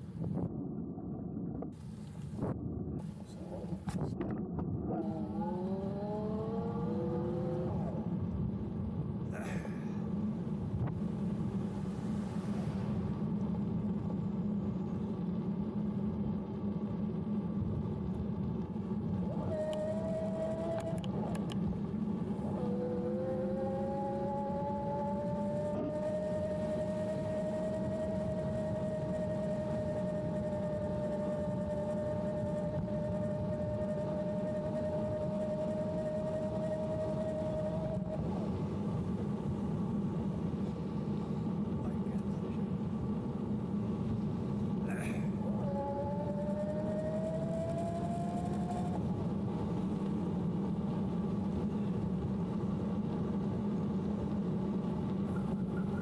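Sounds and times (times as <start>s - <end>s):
wind: 0.0s - 56.0s
electric bike motor whining: 1.8s - 8.2s, 19.2s - 39.3s, 45.0s - 49.2s.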